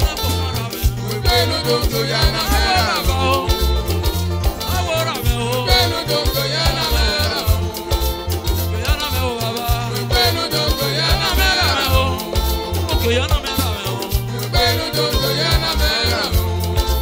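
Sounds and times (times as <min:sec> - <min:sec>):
bass line: 0:00.0 - 0:17.0
electric guitar: 0:00.0 - 0:17.0
percussion beat: 0:00.0 - 0:17.0
person singing: 0:00.0 - 0:17.0.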